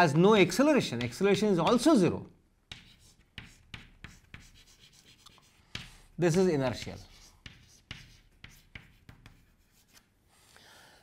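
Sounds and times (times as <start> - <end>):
chalk writing on a blackboard: 0.4 - 1.9, 2.7 - 10.4.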